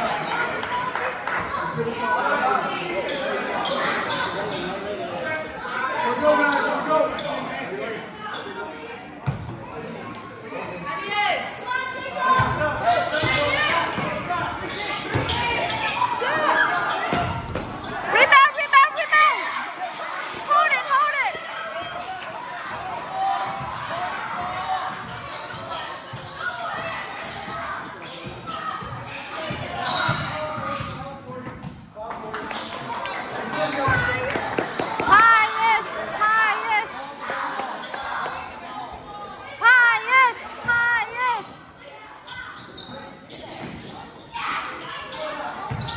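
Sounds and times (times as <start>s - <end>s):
voices shouting in echoing hall: 0.0s - 31.2s, 32.2s - 45.9s
crowd chatter: 0.0s - 45.9s.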